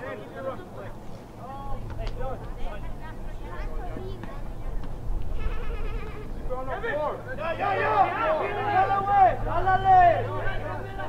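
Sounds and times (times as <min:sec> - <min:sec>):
voices shouting and calling out: 0:00.0 - 0:11.0.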